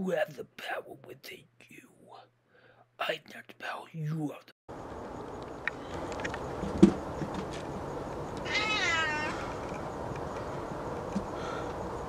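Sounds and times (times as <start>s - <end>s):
cat meowing: 8.4s - 9.6s.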